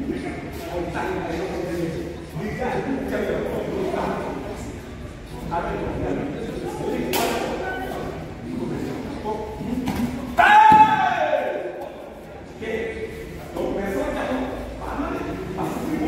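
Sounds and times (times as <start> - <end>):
group murmuring: 0.0 - 10.5, 11.4 - 16.0
thud: 9.9 - 11.0
man's karate shout: 10.3 - 11.7.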